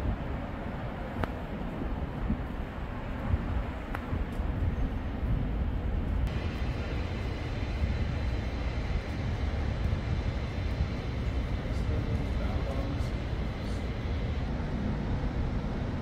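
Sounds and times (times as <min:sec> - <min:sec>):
traffic and engine drone: 0:00.0 - 0:16.0.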